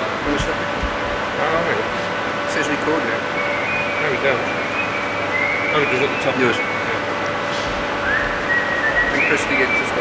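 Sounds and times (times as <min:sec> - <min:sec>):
steady background hum: 0:00.0 - 0:10.0
person whistling: 0:08.0 - 0:09.6.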